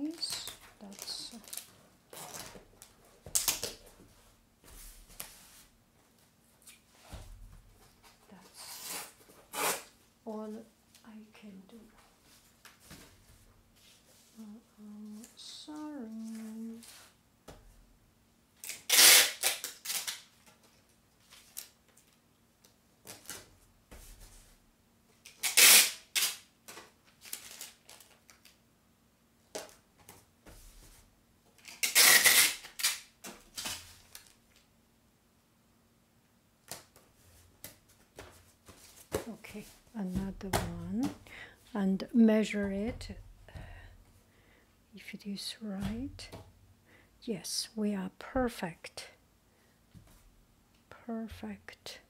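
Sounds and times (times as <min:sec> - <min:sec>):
tape crackles and rustles: 0:00.0 - 0:10.0, 0:18.6 - 0:28.6, 0:29.4 - 0:34.7
tape ripping off roll: 0:08.6 - 0:09.9, 0:18.6 - 0:20.4, 0:25.2 - 0:28.2, 0:31.6 - 0:34.4.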